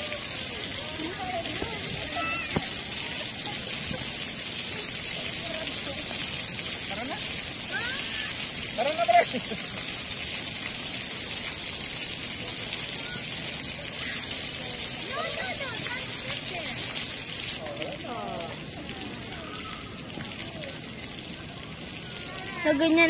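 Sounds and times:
water jets spraying: 0.0 - 23.0.

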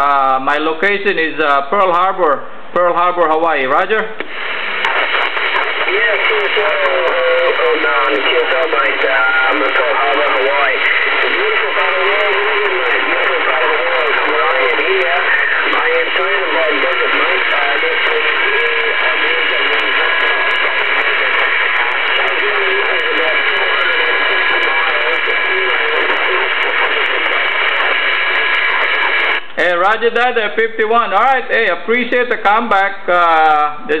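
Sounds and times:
static hiss: 2.7 - 34.0
voice over radio speaker: 2.8 - 34.0.

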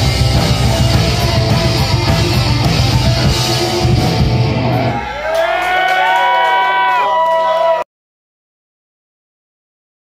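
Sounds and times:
drums and bass: 0.0 - 5.2.

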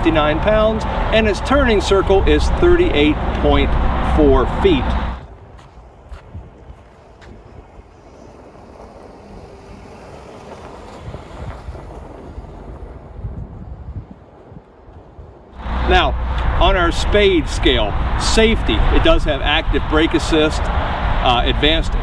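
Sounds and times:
wind on microphone: 0.0 - 22.0
car tyres rolling over snow: 0.1 - 22.0.

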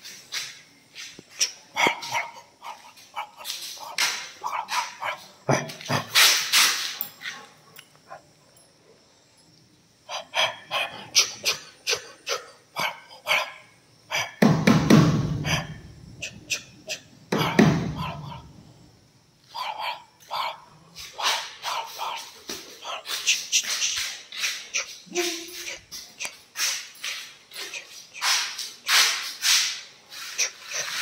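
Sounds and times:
dog barking: 1.7 - 6.5, 10.1 - 14.4, 15.4 - 15.9, 16.9 - 18.4, 19.5 - 23.8.

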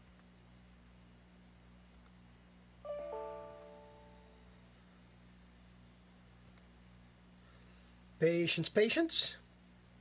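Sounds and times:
faint low hum: 0.0 - 10.0
bright ringing chime chords: 2.9 - 4.5.

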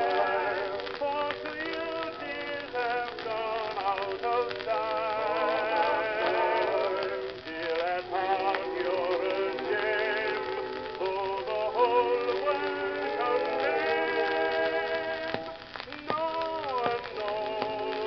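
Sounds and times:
muffled old gramophone music: 0.0 - 18.0.

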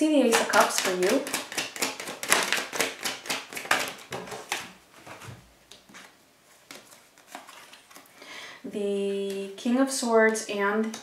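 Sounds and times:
cards being shuffled: 0.3 - 8.1.

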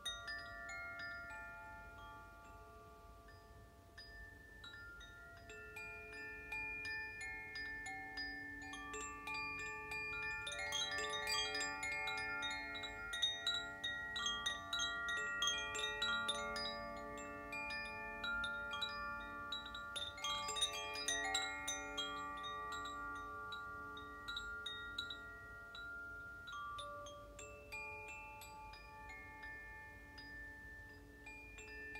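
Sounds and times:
wind chimes ringing: 0.0 - 31.9.

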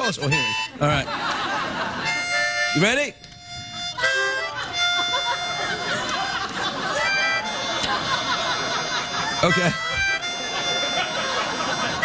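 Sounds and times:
harmonica chords: 0.0 - 12.0.

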